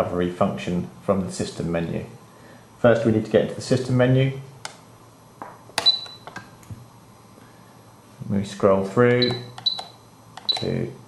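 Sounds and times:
short high beep: 9.2 - 10.7
power switch click: 9.2 - 10.8.

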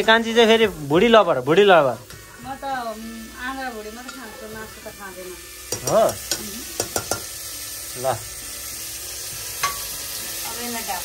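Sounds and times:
meat sizzling in a pot: 0.0 - 11.0
ladle clinking against pot: 5.7 - 7.3.

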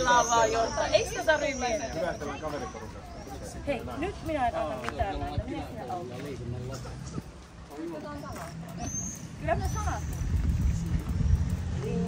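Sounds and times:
people talking quietly: 0.0 - 12.0.

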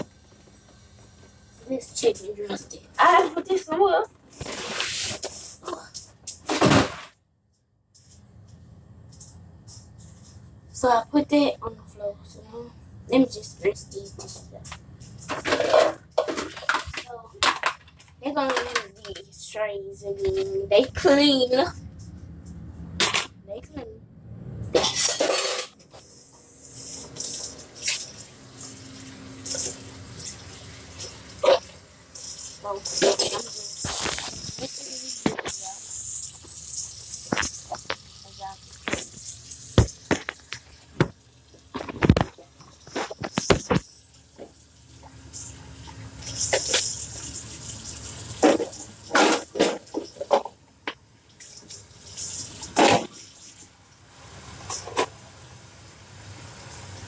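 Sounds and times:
kitchen tap running: 0.0 - 4.1, 13.1 - 21.8, 25.9 - 57.0
dishes clattering in sink: 15.2 - 19.2, 48.4 - 50.6, 52.7 - 53.3.

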